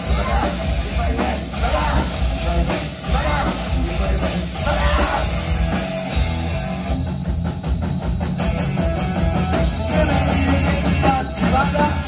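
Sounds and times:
distorted electric guitars: 0:00.0 - 0:12.0
driving drum beat: 0:00.0 - 0:12.0.

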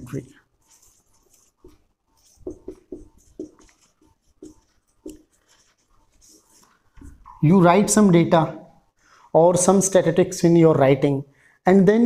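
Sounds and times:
marker pen scratching on whiteboard: 0:00.1 - 0:08.2.

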